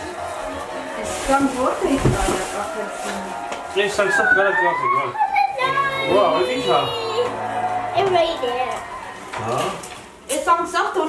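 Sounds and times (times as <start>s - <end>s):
plastic wrapping rustling: 0.0s - 5.0s, 8.4s - 11.0s
family voices: 0.0s - 11.0s
child speaking: 5.1s - 7.3s, 8.0s - 8.8s.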